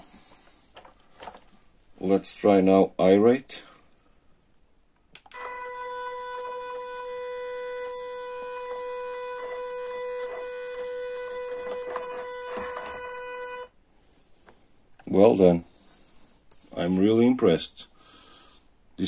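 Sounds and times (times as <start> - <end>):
electric motor whine: 5.4 - 13.7.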